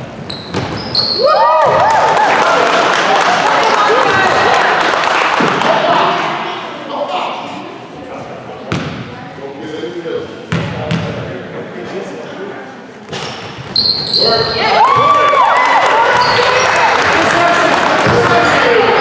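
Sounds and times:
loud voices of spectators: 0.0 - 19.0.

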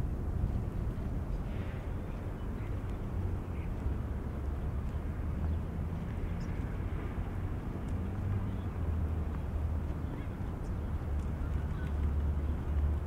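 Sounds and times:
distant traffic rumble: 0.0 - 13.0.

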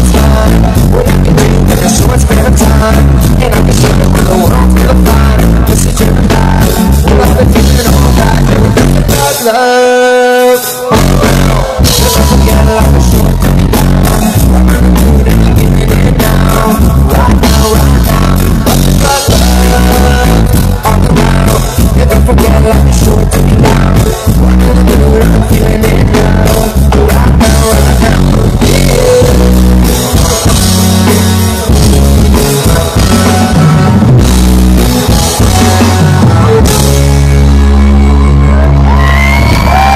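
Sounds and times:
deep bass note: 0.0 - 9.2, 10.9 - 39.9
reggae band playing live: 0.0 - 39.9.

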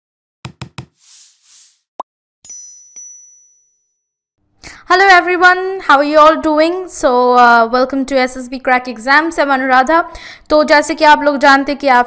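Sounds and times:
quick knocks: 0.5 - 1.0.

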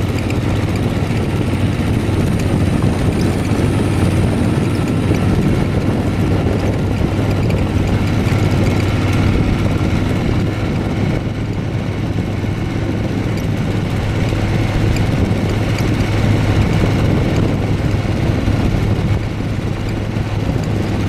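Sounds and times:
motorcycle engine running: 0.0 - 21.0
wind and road noise: 0.0 - 21.0.

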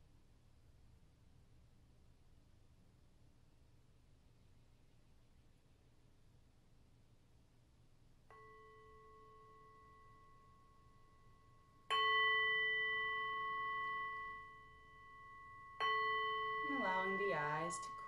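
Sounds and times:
singing bowl ringing: 8.3 - 18.0.

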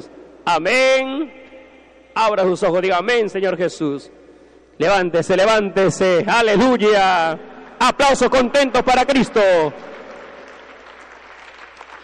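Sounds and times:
crowd applauding: 9.1 - 12.0.

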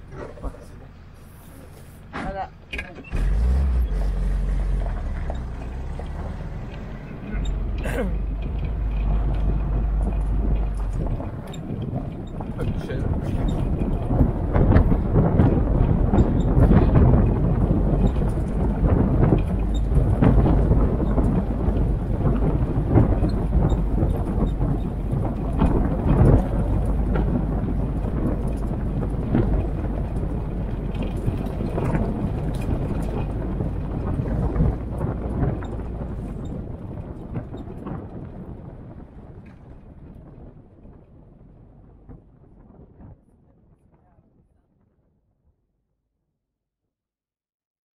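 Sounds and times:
jeep engine driving: 0.0 - 38.4
wind buffeting microphone: 0.0 - 45.0.

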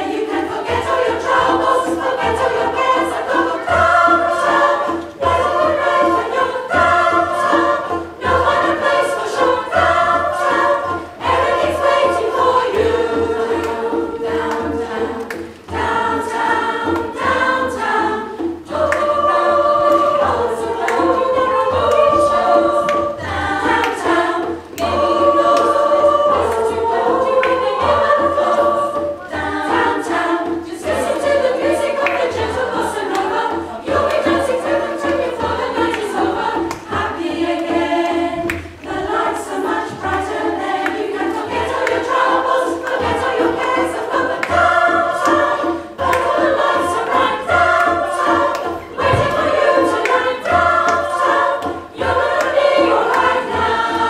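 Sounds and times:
women's choir singing: 0.0 - 54.0.

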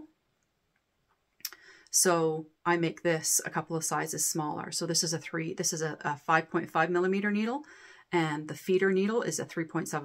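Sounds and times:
woman's voice: 1.4 - 10.0.

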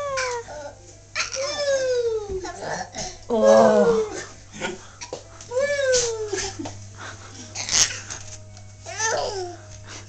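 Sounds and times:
baby calling: 0.0 - 2.2.

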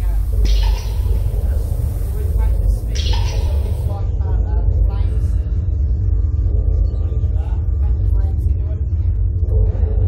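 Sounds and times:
wind buffeting microphone: 0.0 - 4.1
faint voices: 0.0 - 4.4.

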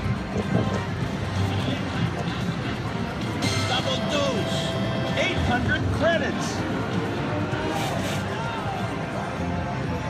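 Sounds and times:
background chatter: 0.0 - 10.0
slot machine tones: 3.4 - 5.1.

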